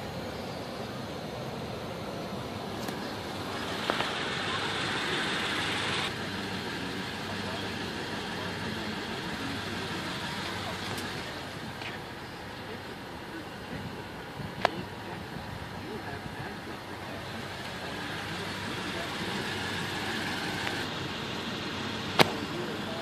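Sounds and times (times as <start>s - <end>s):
road traffic: 0.0s - 23.0s
hissing: 0.1s - 14.1s, 15.0s - 23.0s.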